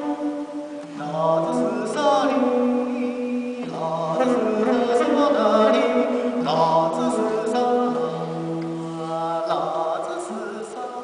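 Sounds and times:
guitar playing: 0:00.0 - 0:09.1.

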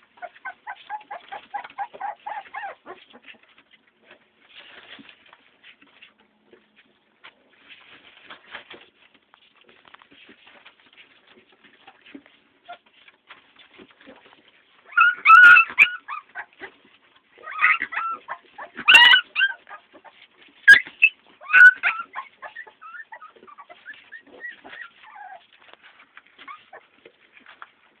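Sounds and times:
dog whimpering and yipping: 0:00.1 - 0:03.5, 0:14.8 - 0:16.8, 0:17.4 - 0:27.6.

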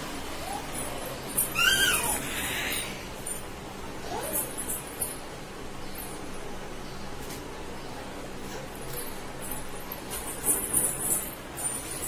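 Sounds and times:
toddler squealing: 0:01.4 - 0:03.0.

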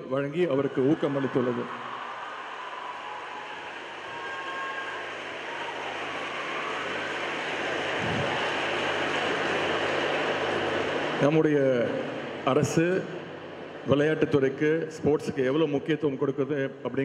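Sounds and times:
audience applauding: 0:00.5 - 0:11.8.

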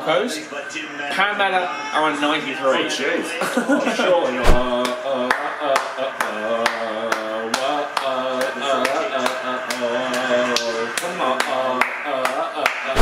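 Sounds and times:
clapping beat: 0:04.7 - 0:13.0.

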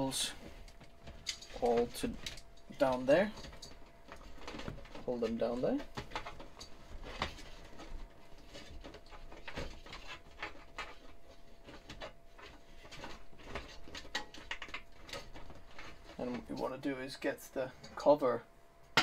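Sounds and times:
cables clicking and scraping: 0:00.0 - 0:18.2.

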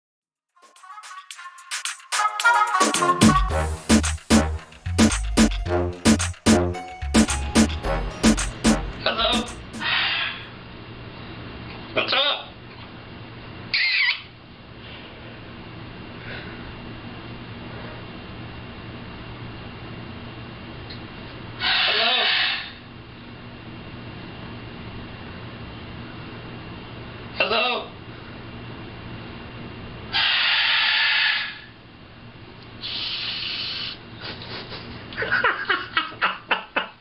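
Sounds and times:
macaw call: 0:13.8 - 0:14.3, 0:21.6 - 0:22.8, 0:30.2 - 0:31.7.

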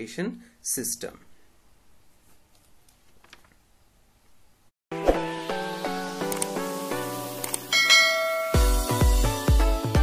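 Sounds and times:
outro music: 0:04.9 - 0:10.0
quick clicks: 0:06.3 - 0:06.6, 0:07.4 - 0:07.7
electronic music with heavy bass beat: 0:06.5 - 0:10.0
bell-like notification chime: 0:07.7 - 0:08.9.

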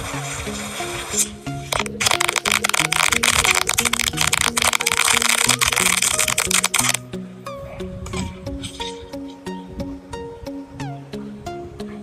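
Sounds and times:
background music: 0:00.0 - 0:12.0
firecrackers cracking: 0:01.7 - 0:07.0.

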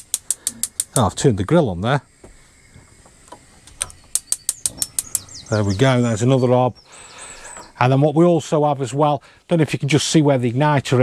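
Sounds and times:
gas hob igniter clicking: 0:00.0 - 0:01.1, 0:03.3 - 0:05.4.

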